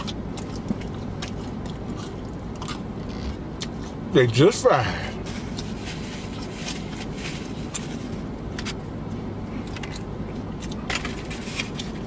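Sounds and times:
chewing: 0.0 - 4.0
vehicle cabin hum: 0.0 - 12.0
food wrappers crackling: 5.2 - 8.8.

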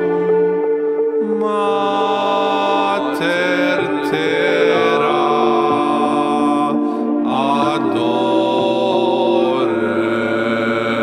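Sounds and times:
slow choral chant: 0.0 - 11.0
sustained drone: 0.0 - 11.0.

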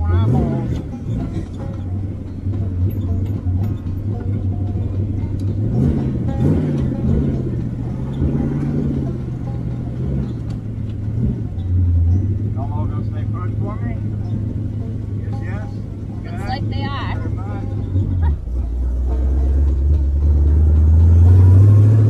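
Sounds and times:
engine running from inside cab: 0.0 - 22.0.

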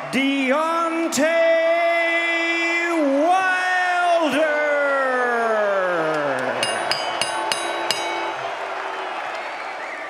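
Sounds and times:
arena crowd noise: 0.0 - 10.0
sharp ringing clinks: 6.6 - 8.6.

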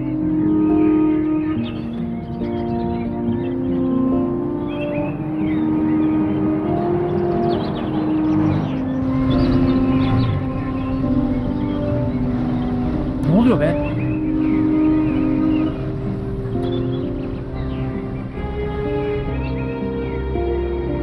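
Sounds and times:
slow music of long held notes: 0.0 - 21.0
car engine running low: 6.2 - 19.4.

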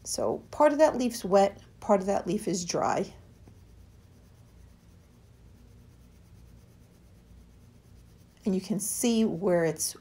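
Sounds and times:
pencil scratching on paper: 0.2 - 10.0.

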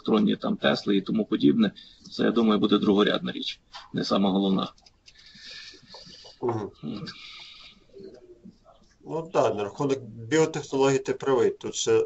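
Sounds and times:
broken voices over a call: 0.0 - 12.0
murmured vocal: 5.4 - 8.5, 9.1 - 10.9.

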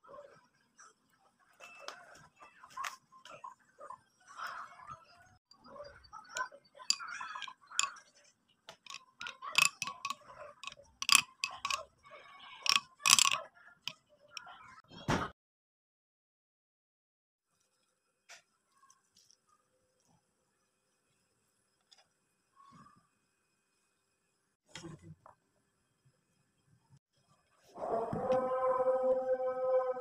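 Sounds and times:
spoon clinking and scraping glass bowl: 6.3 - 8.2, 8.8 - 11.9, 12.6 - 13.5.

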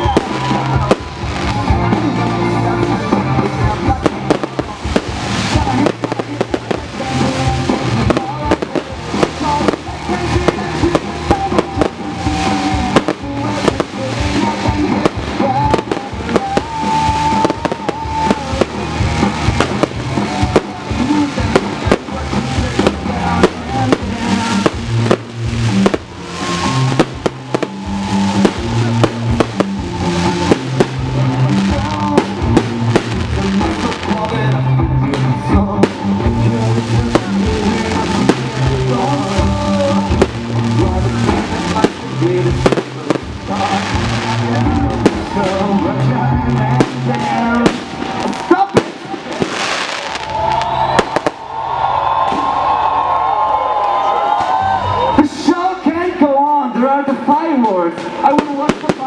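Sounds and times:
fireworks bursting and crackling: 0.0 - 53.4, 54.3 - 59.0
music playing: 0.0 - 59.0.

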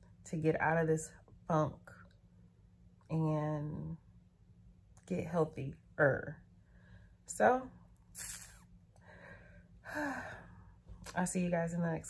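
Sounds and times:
woman breathing out: 9.0 - 10.8.

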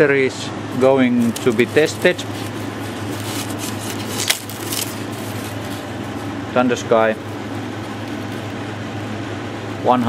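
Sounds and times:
fan-like whir of equipment: 0.0 - 10.0.

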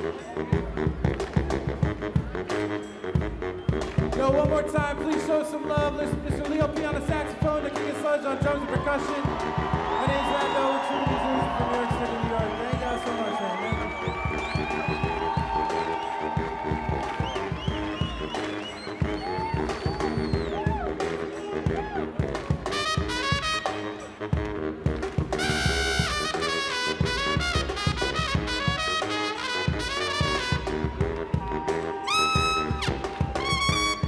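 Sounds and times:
baritone saxophone gliding notes: 0.0 - 6.9, 13.6 - 34.0
drum and percussion beat: 0.0 - 34.0
fast high horn notes: 0.0 - 34.0.

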